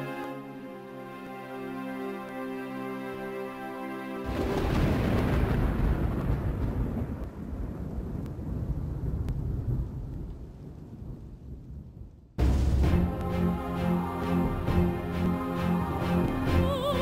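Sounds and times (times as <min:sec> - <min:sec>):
music: 0:00.0 - 0:04.5, 0:12.4 - 0:17.0
deep thunder-like rumble: 0:04.3 - 0:13.2.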